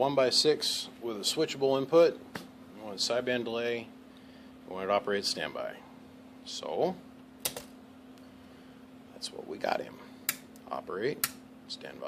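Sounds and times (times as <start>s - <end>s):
low steady hum: 0.0s - 12.0s
sharp click: 7.4s - 7.7s, 11.2s - 11.4s.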